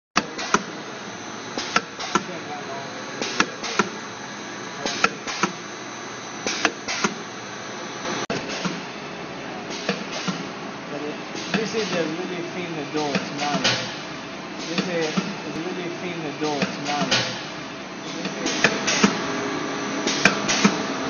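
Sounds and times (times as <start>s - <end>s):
machine running hum: 0.2s - 21.0s
machine clacking: 1.6s - 2.5s, 3.2s - 4.0s, 4.8s - 5.6s, 9.7s - 10.6s, 11.4s - 19.4s, 20.0s - 21.0s.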